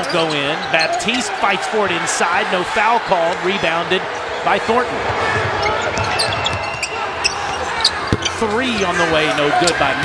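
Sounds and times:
arena crowd noise: 0:00.0 - 0:10.0
basketball dribbling: 0:05.0 - 0:08.8
sneakers squeaking on court: 0:05.0 - 0:10.0.

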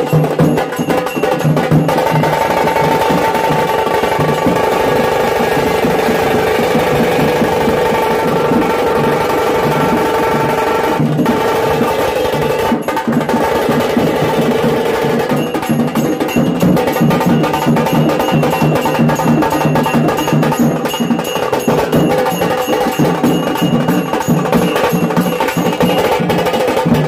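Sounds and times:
street drum group drumming: 0:00.0 - 0:27.0.

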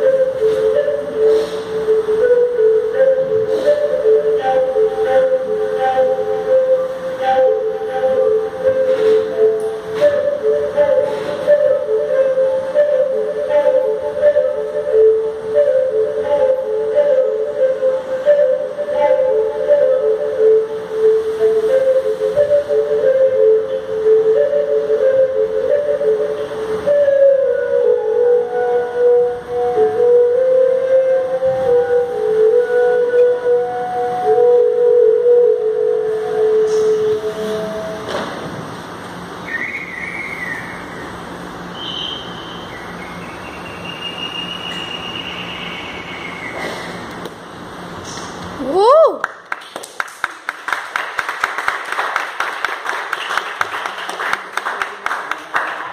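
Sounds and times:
faint high whistling tones: 0:00.0 - 0:38.2, 0:39.4 - 0:47.1
slow flute-like melody: 0:00.0 - 0:38.7, 0:39.4 - 0:47.1, 0:48.6 - 0:49.2.

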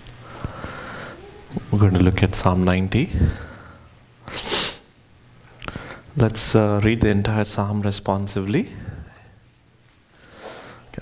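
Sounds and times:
man speaking: 0:01.6 - 0:03.6, 0:06.2 - 0:09.1
man sniffing: 0:03.1 - 0:04.9.

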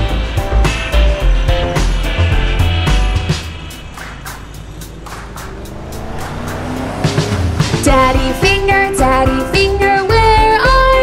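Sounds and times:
background music with steady beat: 0:00.0 - 0:11.0
cartoon car driving in: 0:02.6 - 0:10.6.

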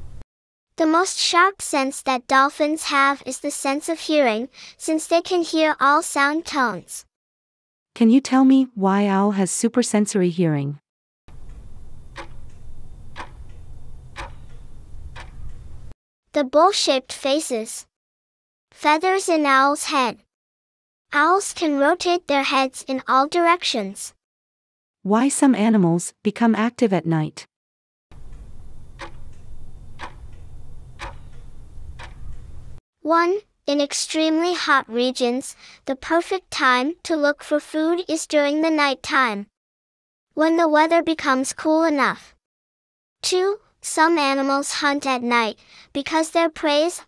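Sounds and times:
low steady rumble: 0:00.0 - 0:00.2, 0:11.3 - 0:15.9, 0:28.1 - 0:32.8
clock ticking: 0:11.3 - 0:15.9, 0:28.1 - 0:32.8
steady low hum: 0:11.3 - 0:15.9, 0:28.1 - 0:32.8.

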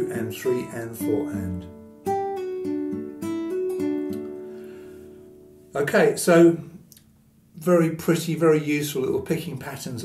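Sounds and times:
fingerpicked nylon-string guitar: 0:00.0 - 0:08.3.

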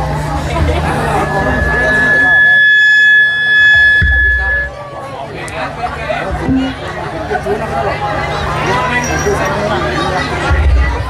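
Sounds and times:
crowd chatter: 0:00.0 - 0:11.0
steady high-pitched tone: 0:00.6 - 0:04.7, 0:06.4 - 0:07.0.

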